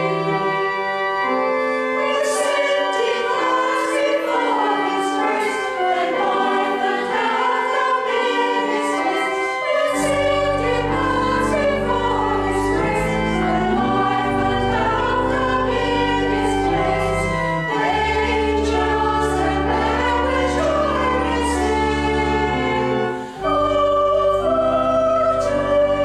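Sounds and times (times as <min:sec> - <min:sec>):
church choir singing: 0:00.0 - 0:26.0
low organ notes: 0:00.0 - 0:26.0.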